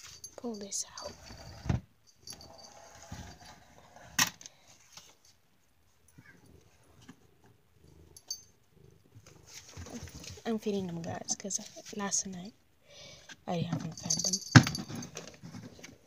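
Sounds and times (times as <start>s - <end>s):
quiet rustling: 0.0s - 12.6s.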